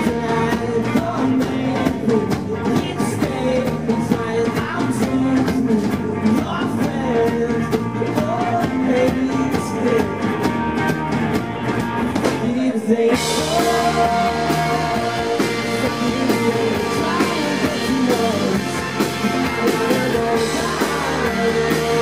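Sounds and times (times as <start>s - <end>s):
lead vocal: 0.0s - 10.8s, 12.1s - 22.0s
drum beat: 0.0s - 12.5s, 13.2s - 22.0s
electric guitars: 0.0s - 22.0s.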